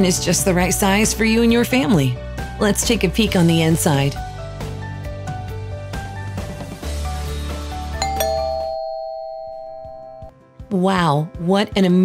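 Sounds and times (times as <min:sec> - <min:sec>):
doorbell ding-dong chime: 0:08.0 - 0:10.3.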